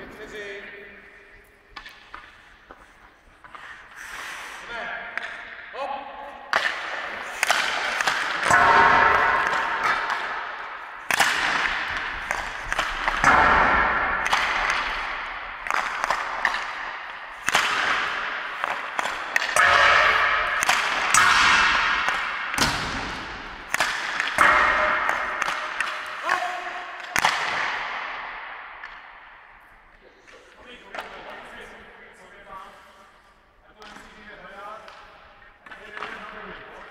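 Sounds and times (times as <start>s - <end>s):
hockey stick cracking on puck: 1.7s - 4.1s, 6.5s - 29.2s, 34.8s - 36.9s
puck hitting boards: 1.8s - 4.0s, 5.1s - 5.6s, 6.5s - 29.3s, 33.8s - 36.9s.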